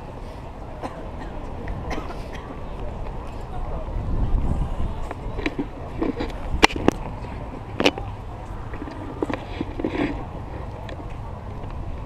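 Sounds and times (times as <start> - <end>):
people's voices: 0.0 - 12.0
wind rumble on microphone: 1.6 - 12.0.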